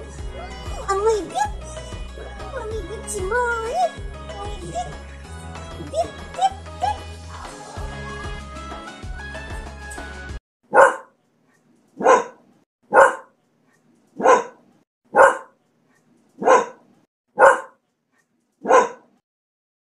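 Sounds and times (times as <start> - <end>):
background music: 0.0 - 10.4
dog barking: 5.8 - 7.1, 10.7 - 11.2, 12.0 - 13.4, 14.2 - 15.6, 16.4 - 17.8, 18.6 - 19.2.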